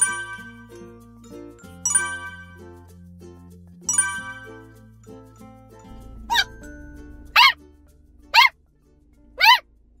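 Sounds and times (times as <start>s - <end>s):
puppy yipping: 6.3s - 6.6s, 7.3s - 7.6s, 8.3s - 8.6s, 9.4s - 9.7s.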